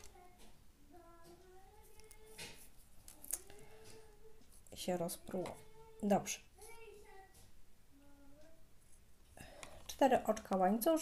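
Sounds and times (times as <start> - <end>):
person singing faintly: 0.0 - 8.8.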